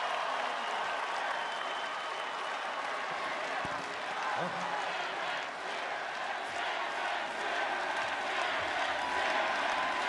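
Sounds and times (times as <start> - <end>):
large crowd applauding: 0.0 - 10.0.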